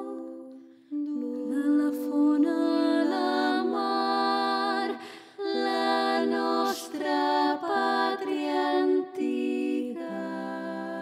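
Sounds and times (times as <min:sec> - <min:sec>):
song with held wordless vocals: 0:00.0 - 0:11.0.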